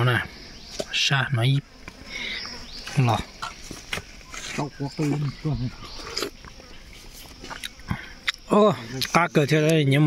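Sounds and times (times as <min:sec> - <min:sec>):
insects droning: 0:00.0 - 0:10.0.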